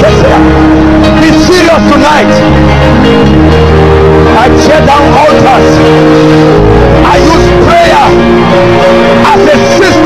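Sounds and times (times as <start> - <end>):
sustained keyboard chords: 0.0 - 10.0.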